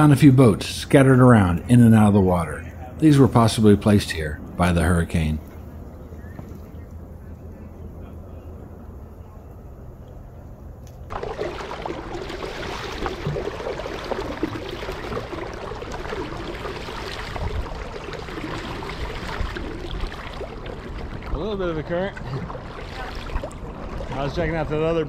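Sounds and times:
low hum: 5.4 - 25.0
water splashing around kayak: 11.1 - 25.0.

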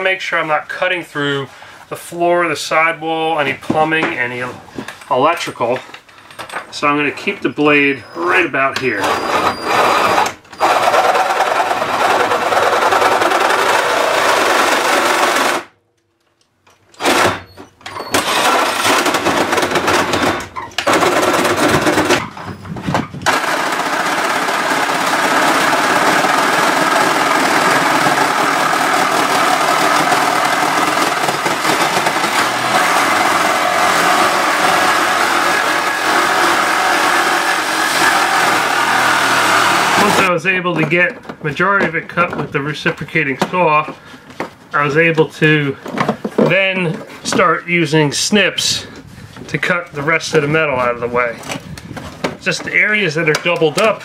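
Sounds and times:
reciprocating saw cutting sheet metal: 7.7 - 15.7, 23.3 - 40.3.

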